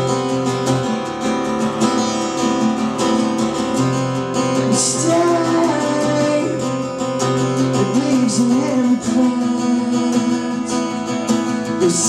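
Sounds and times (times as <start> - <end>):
strummed acoustic guitar: 0.0 - 12.0
man singing: 4.5 - 12.0.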